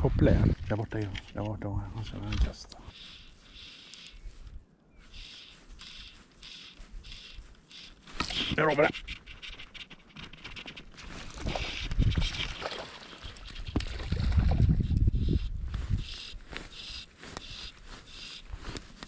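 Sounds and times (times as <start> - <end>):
fly line stripped through rod guides: 2.2 - 4.4, 5.1 - 14.0
rumbling handling noise on rod: 7.0 - 16.0.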